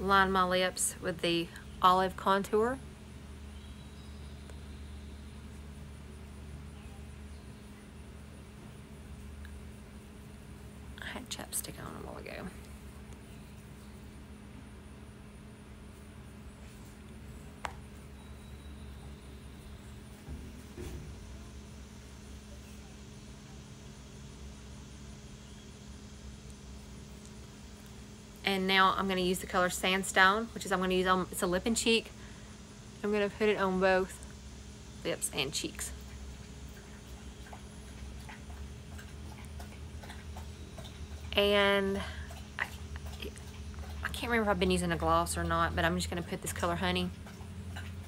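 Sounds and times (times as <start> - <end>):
background hum: 0.0 - 48.0.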